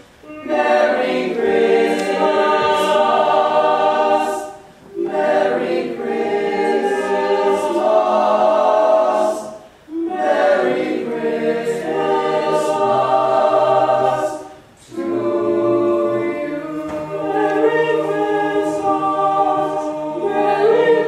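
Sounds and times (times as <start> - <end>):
boys singing in close harmony: 0.2 - 21.0.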